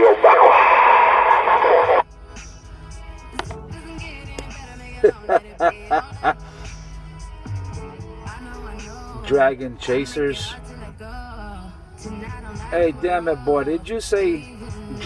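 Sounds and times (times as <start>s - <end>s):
radio voice transmission: 0.0s - 2.0s
quiet music over radio: 0.0s - 6.4s, 8.2s - 15.0s.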